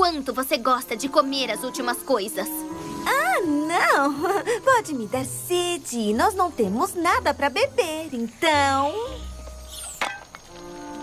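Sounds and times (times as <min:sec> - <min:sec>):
soft cartoon music: 0:00.0 - 0:11.0.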